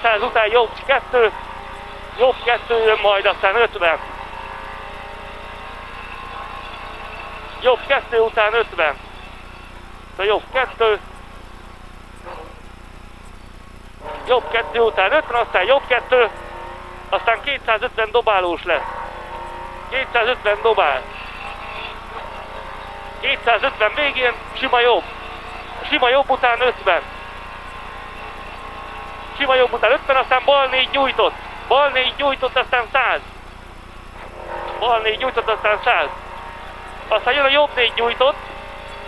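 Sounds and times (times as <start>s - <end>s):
car engine running: 0.0s - 39.0s.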